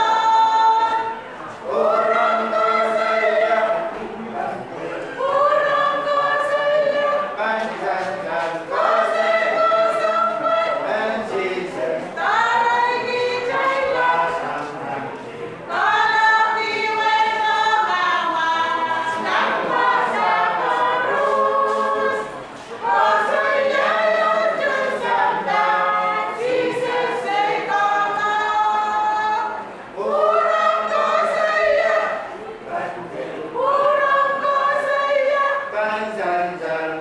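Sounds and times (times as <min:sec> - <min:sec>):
choir singing unaccompanied: 0:00.0 - 0:37.0.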